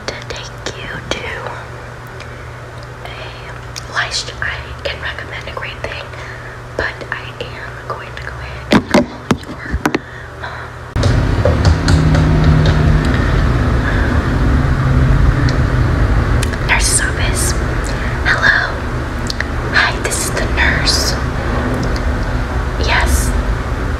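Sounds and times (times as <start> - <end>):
soft whispering: 0.0 - 1.7, 3.0 - 10.8, 16.6 - 18.8, 19.7 - 21.2, 22.8 - 23.4
background noise with low hum: 0.0 - 23.9.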